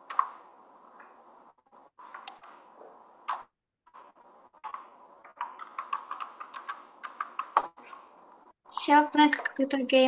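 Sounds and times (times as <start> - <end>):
keyboard keys clicking: 5.4 - 7.7
person speaking: 8.7 - 10.0.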